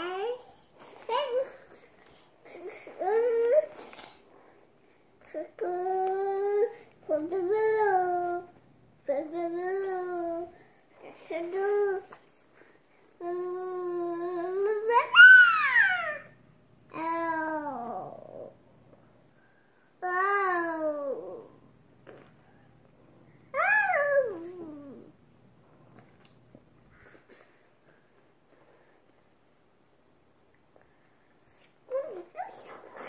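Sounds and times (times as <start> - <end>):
toddler babbling: 0.0 - 1.8, 31.9 - 33.0
toddler whining and squealing: 13.4 - 16.4, 23.6 - 25.1, 31.9 - 33.0.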